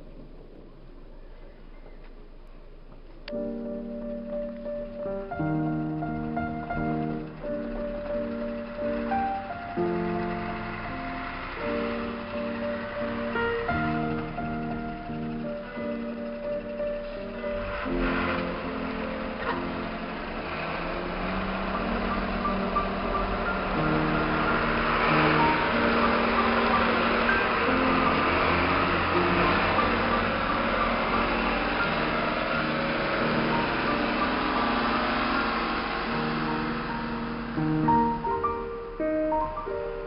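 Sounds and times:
background music with held notes: 0.0s - 40.0s
snowplow trucks: 0.0s - 40.0s.

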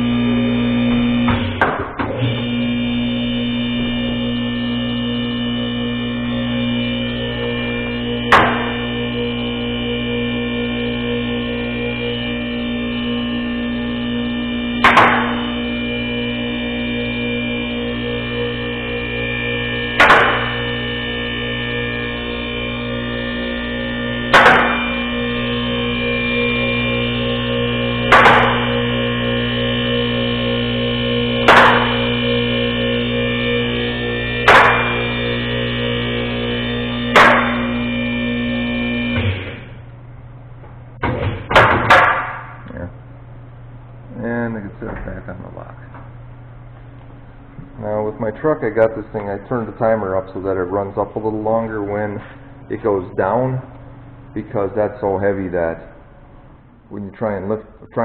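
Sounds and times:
hydraulic power unit humming: 0.0s - 58.0s.

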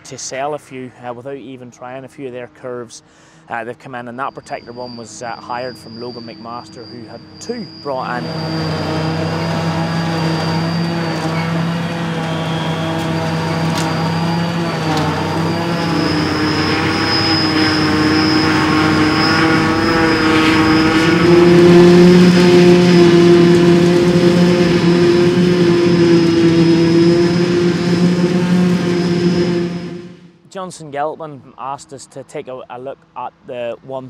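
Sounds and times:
tractor engine working hard: 0.0s - 30.4s
high machinery whine: 0.0s - 31.7s.

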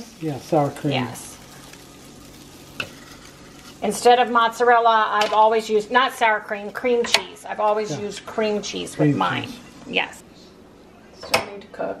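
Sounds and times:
batter sizzling in waffle maker: 0.0s - 10.2s.

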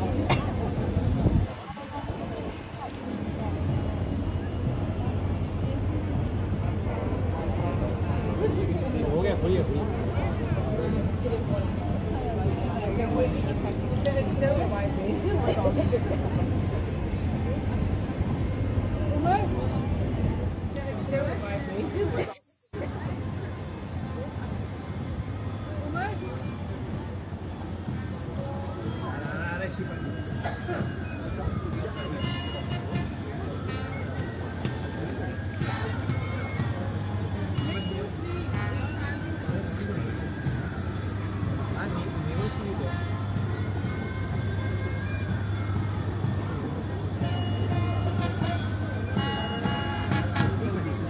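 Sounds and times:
crowd chatter: 0.0s - 51.0s
street traffic noise: 0.0s - 51.0s.

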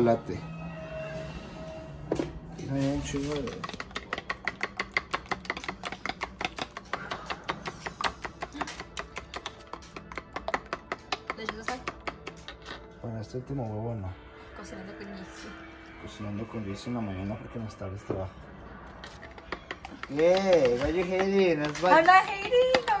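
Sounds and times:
fork beating eggs in a bowl: 3.2s - 12.8s, 18.9s - 22.0s.

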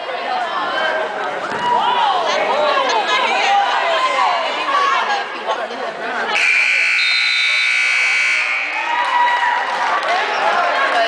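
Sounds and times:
crowd voices: 0.0s - 11.0s
scoreboard buzzer blast: 6.4s - 8.8s.

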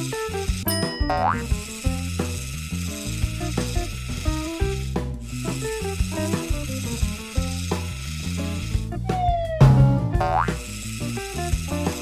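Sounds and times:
bouncy cartoon music: 0.1s - 2.4s, 3.0s - 12.0s.

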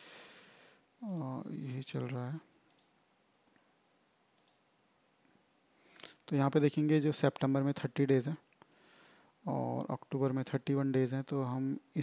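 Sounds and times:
computer mouse click: 2.7s - 3.0s, 4.4s - 4.7s.

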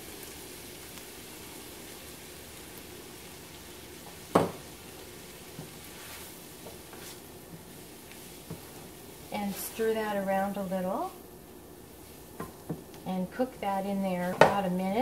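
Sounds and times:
onions sizzling in butter: 0.0s - 15.0s.

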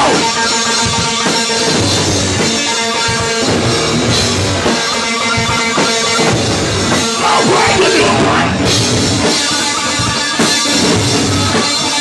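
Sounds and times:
hardcore band playing loud: 0.0s - 12.0s.

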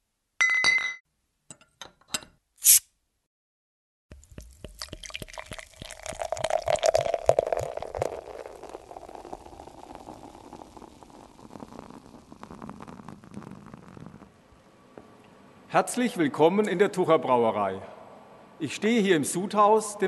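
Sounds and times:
bubbles fizzing: 4.1s - 14.4s
beer pouring into glass: 4.2s - 14.3s.

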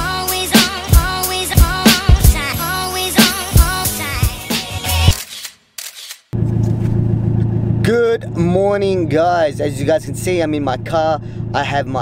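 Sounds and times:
camera shutter clicks: 5.1s - 6.4s
car engine humming: 6.4s - 12.0s.

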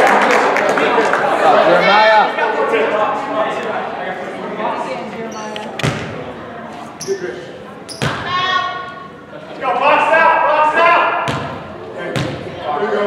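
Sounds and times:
indistinct voices: 1.2s - 9.6s.

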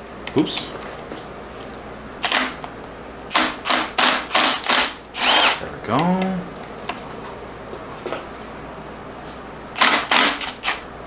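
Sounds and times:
screwdriver driving screws: 3.3s - 5.6s, 9.8s - 10.8s.

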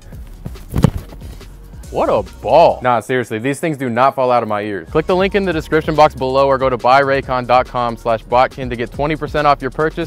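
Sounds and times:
foot kicking football: 0.0s - 1.4s
background music: 0.0s - 10.0s.

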